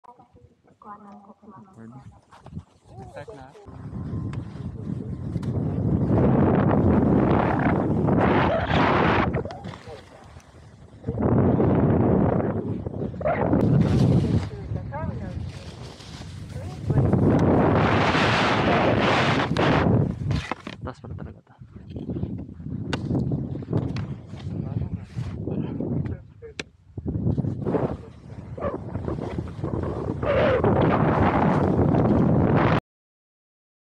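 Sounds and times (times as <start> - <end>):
wind on microphone: 1.9 - 32.8.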